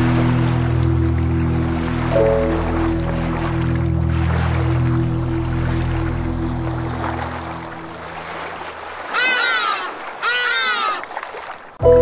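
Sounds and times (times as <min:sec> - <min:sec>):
drawn-out animal cries: 0:09.1 - 0:11.1.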